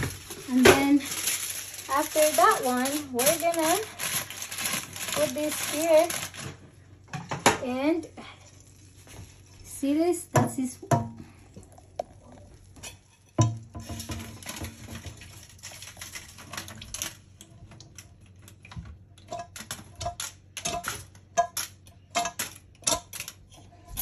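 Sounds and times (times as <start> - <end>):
frying pan knocking on sink: 10.3 - 11.2, 13.3 - 15.3.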